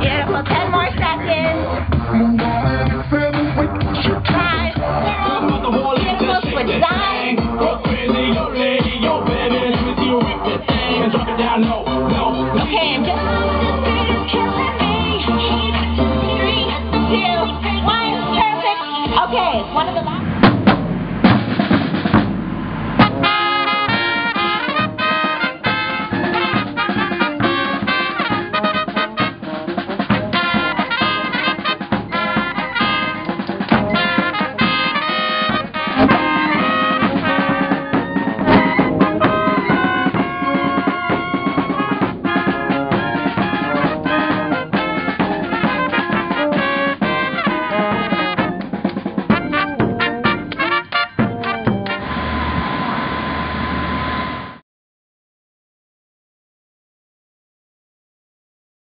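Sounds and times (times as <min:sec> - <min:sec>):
brass street band playing: 0:00.0 - 0:54.6.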